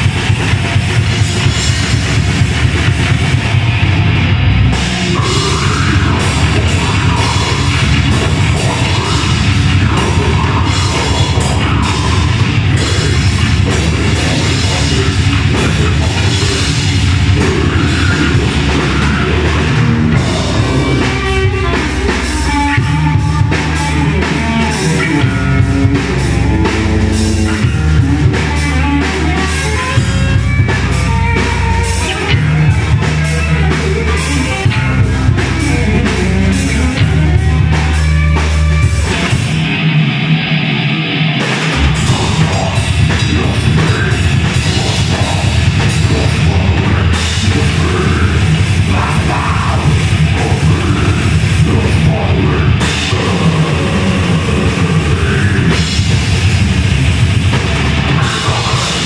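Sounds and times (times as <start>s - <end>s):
live rock band playing: 0.0s - 59.0s.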